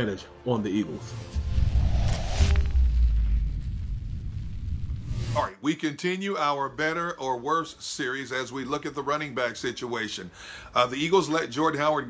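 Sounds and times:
deep cinematic boom: 0:01.3 - 0:05.4.

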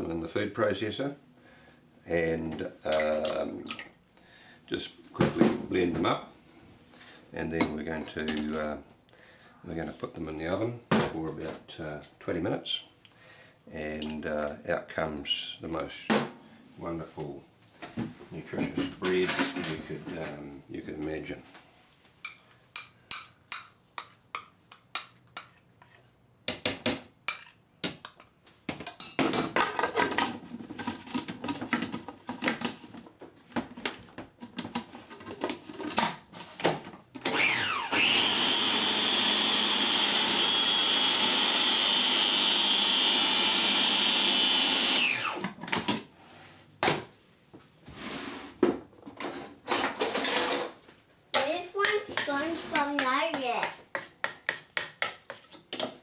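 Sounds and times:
food processor motor whining: 0:37.2 - 0:45.5.

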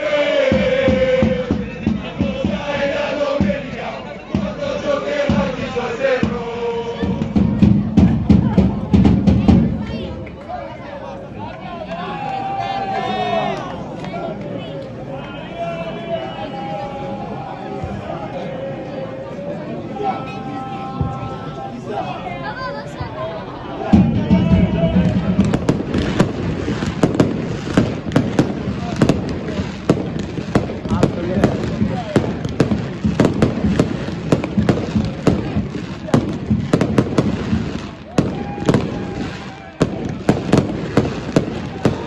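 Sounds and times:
crowd voices: 0:00.0 - 0:42.0
fireworks bangs and crackles: 0:00.4 - 0:10.3, 0:23.8 - 0:42.0.

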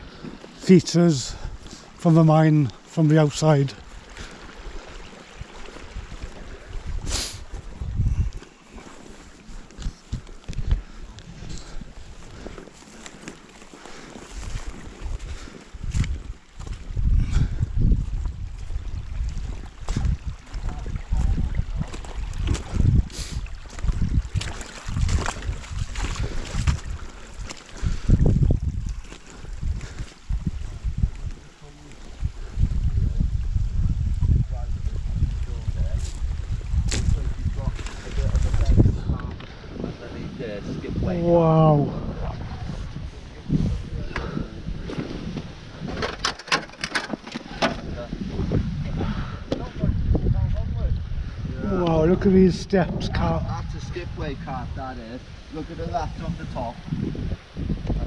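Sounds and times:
small stream running: 0:00.0 - 0:58.0
wind buffeting microphone: 0:00.0 - 0:58.0.

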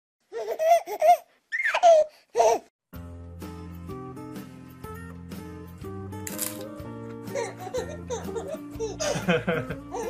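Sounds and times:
baby laughing: 0:00.3 - 0:02.7, 0:07.3 - 0:10.0
baby squealing: 0:00.4 - 0:02.7.

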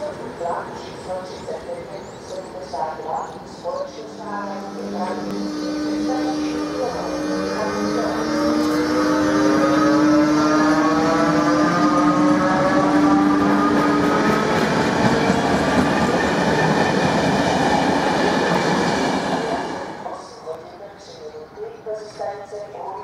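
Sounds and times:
train wheels rumbling and clattering: 0:03.9 - 0:20.6
electric locomotive whine rising: 0:04.1 - 0:20.0.

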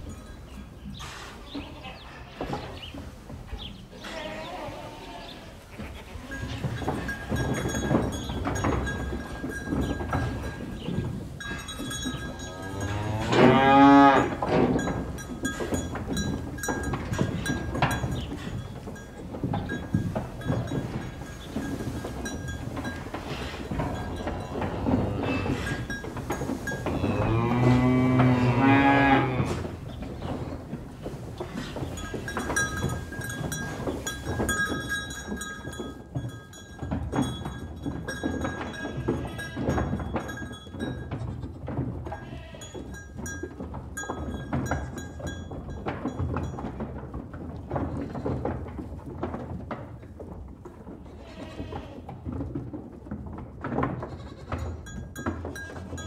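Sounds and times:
knocks: 0:06.5 - 0:50.4
cow mooing: 0:12.4 - 0:14.4, 0:23.3 - 0:25.8, 0:26.9 - 0:29.6.

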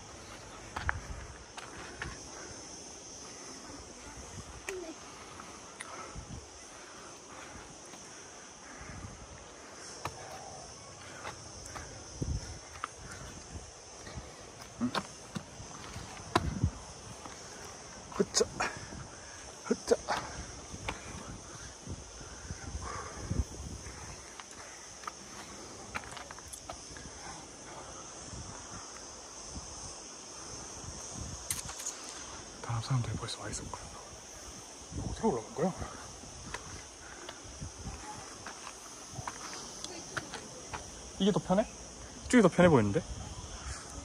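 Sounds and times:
footsteps on sandy rock: 0:00.0 - 0:02.3, 0:09.8 - 0:18.6, 0:36.4 - 0:41.0
high-pitched insect chorus: 0:00.0 - 0:44.0
steady high hiss: 0:00.0 - 0:44.0.

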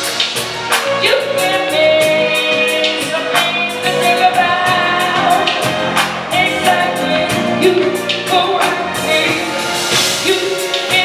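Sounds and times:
drum and cymbal strikes: 0:00.0 - 0:04.0, 0:04.6 - 0:11.0
live band playing: 0:00.0 - 0:11.0
woman singing into microphone: 0:00.8 - 0:11.0.

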